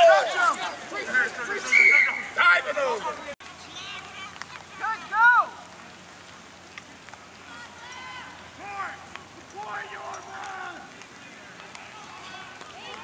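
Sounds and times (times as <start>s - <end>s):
distant people shouting: 0.0s - 5.8s, 7.3s - 13.0s.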